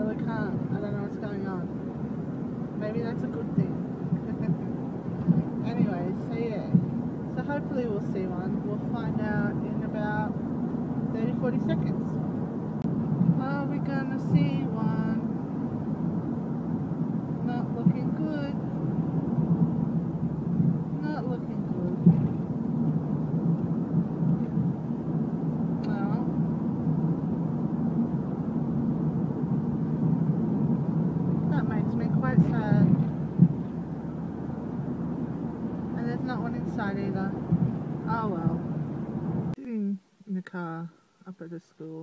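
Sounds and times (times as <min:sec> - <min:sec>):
car engine and tyres rumbling: 0:00.0 - 0:39.6.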